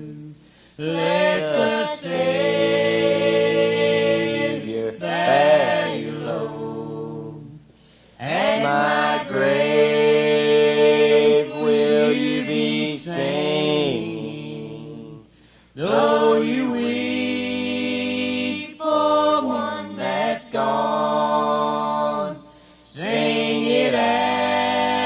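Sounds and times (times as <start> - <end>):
gospel group singing a hymn: 0.0 - 25.0.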